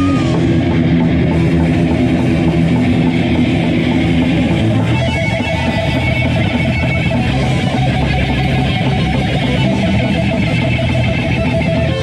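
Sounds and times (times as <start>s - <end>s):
heavy metal band playing live: 0.0s - 12.0s
held guitar notes: 0.0s - 12.0s.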